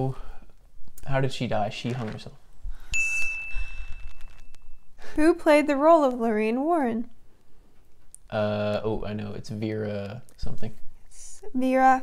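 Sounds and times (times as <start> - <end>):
high-pitched chime ding: 2.9 - 4.8.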